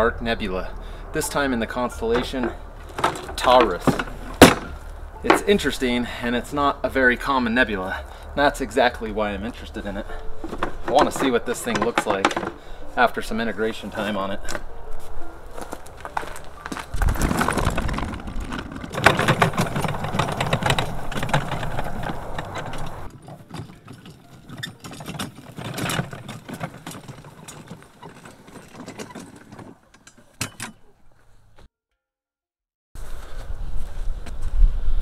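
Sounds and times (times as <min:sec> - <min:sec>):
equipment rattling and knocking: 0:01.9 - 0:05.8, 0:09.0 - 0:12.7, 0:15.7 - 0:30.9
footsteps on dry ground: 0:13.6 - 0:23.1.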